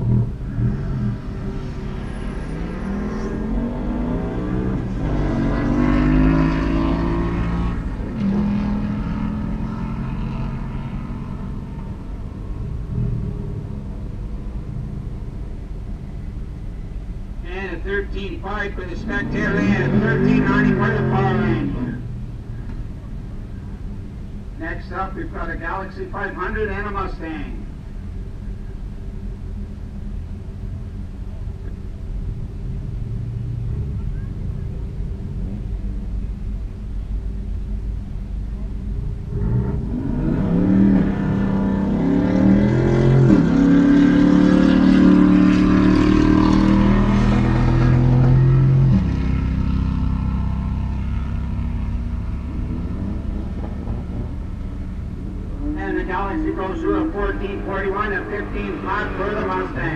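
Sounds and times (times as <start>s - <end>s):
car engines revving through gears: 0.0s - 14.6s, 18.6s - 22.8s, 38.6s - 59.9s
car engines idling: 0.0s - 59.9s
low engine drone: 0.0s - 59.9s.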